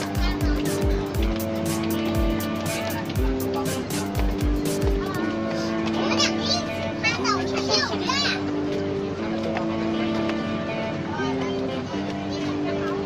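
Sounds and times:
music with long low notes: 0.0s - 13.0s.

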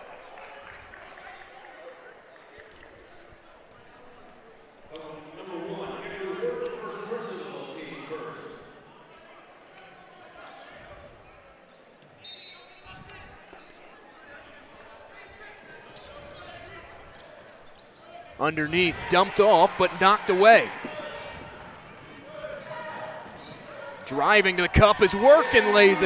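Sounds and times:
crowd voices: 12.8s - 26.0s.

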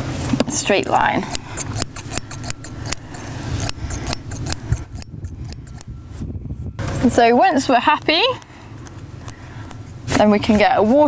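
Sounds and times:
scissors snipping hair: 1.3s - 5.9s.

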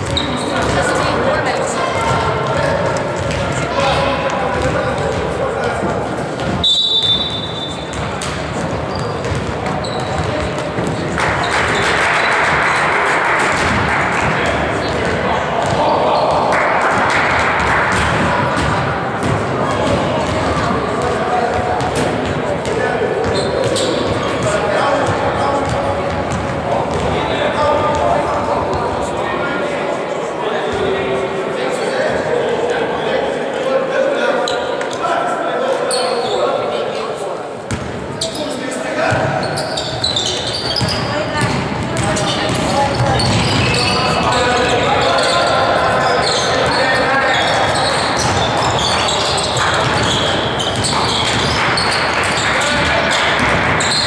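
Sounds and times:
basketballs bouncing on wooden floor: 0.0s - 1.1s, 1.9s - 6.7s, 7.8s - 27.3s, 40.0s - 44.8s, 46.3s - 54.0s
players' voices: 0.0s - 54.0s
high whistle: 6.6s - 7.8s.

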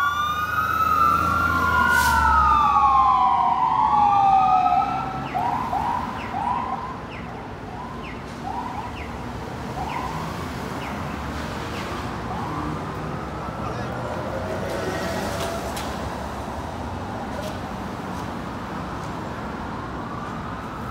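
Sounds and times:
fire truck siren wailing: 0.0s - 10.9s, 11.7s - 16.0s, 18.8s - 20.9s.

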